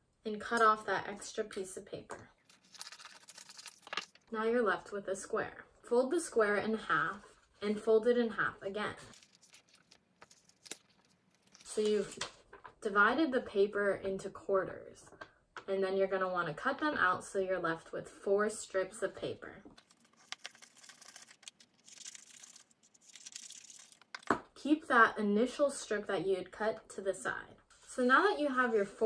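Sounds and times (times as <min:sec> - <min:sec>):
paper rustling: 0:02.5 - 0:04.2, 0:09.0 - 0:12.6, 0:19.8 - 0:24.3
scissors cutting paper: 0:19.9 - 0:24.0.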